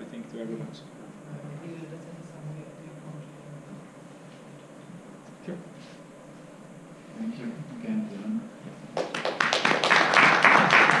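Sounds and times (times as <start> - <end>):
audience applause: 9.0 - 11.0.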